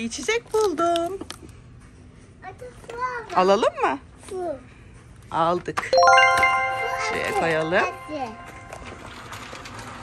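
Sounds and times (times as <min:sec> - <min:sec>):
supermarket background noise: 0:00.0 - 0:10.0.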